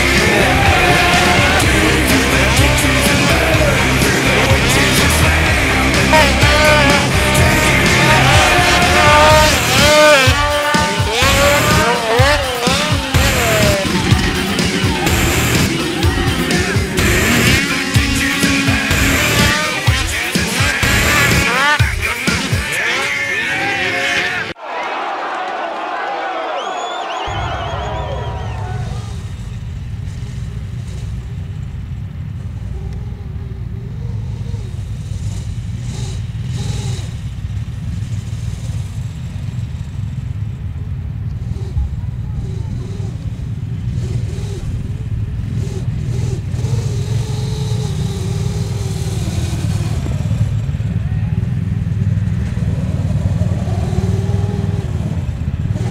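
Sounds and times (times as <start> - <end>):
snowmobile engines revving: 0.0 - 55.9.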